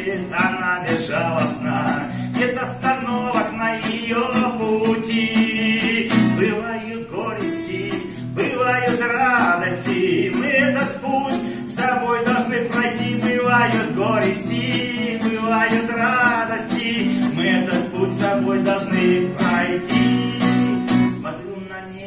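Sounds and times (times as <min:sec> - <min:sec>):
acoustic guitar strumming: 0:00.0 - 0:22.0
man singing: 0:00.0 - 0:22.0.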